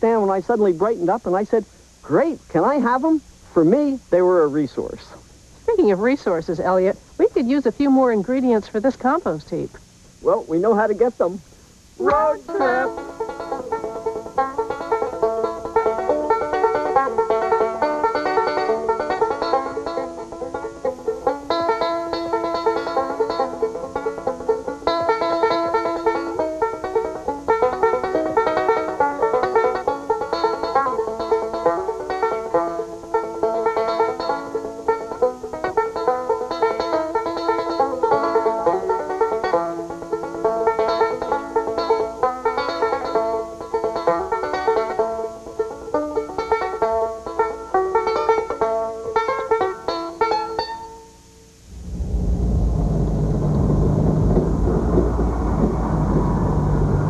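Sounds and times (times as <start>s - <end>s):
banjo music with picked notes: 12.0s - 51.0s
truck engine rumble: 51.6s - 57.0s.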